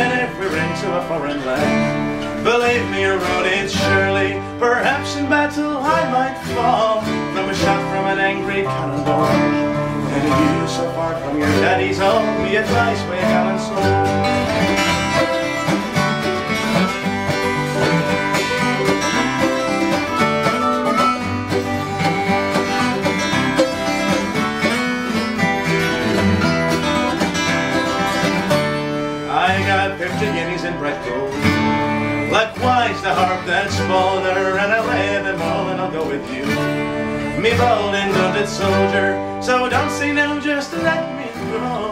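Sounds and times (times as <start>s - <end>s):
slide guitar: 0.0s - 41.9s
strummed acoustic guitars: 0.0s - 41.9s.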